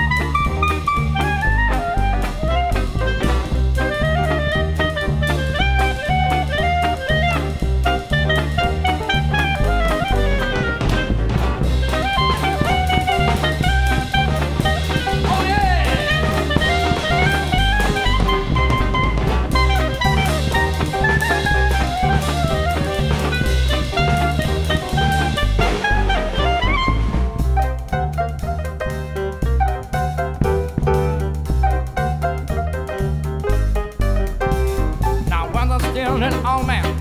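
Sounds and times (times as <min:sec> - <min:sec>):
bass notes: 0:00.0 - 0:37.0
drums: 0:00.0 - 0:37.0
swing jazz band: 0:00.0 - 0:37.0.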